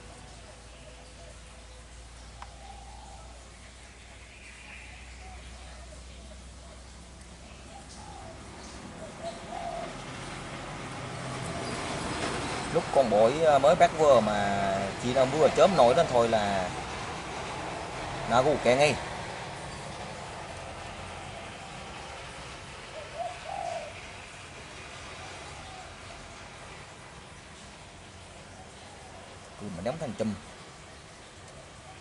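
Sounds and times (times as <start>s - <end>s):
dove cooing: 0.0s - 3.5s, 4.7s - 16.9s, 20.0s - 24.3s, 24.9s - 26.5s.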